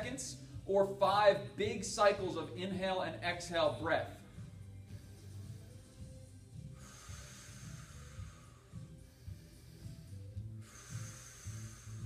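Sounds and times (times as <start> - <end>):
faint background music: 0.0 - 12.0
slow breath out: 6.5 - 12.0.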